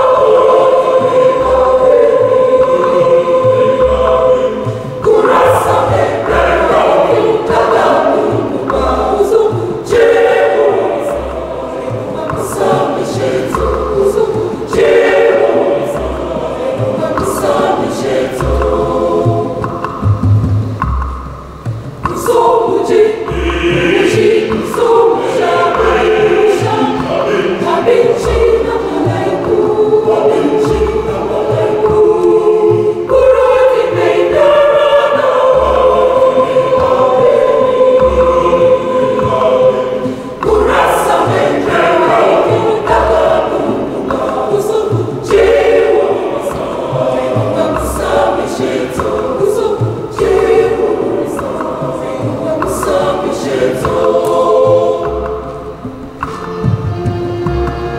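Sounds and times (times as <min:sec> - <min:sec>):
choir singing in parts: 0:00.0 - 0:57.9.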